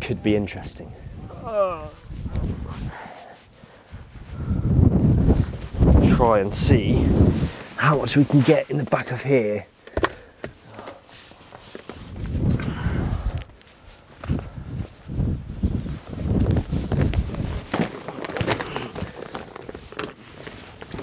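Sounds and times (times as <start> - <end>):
fabric rustling: 1.2 - 9.5, 11.0 - 12.4, 13.5 - 21.0
bags thudding and knocking: 16.5 - 21.0.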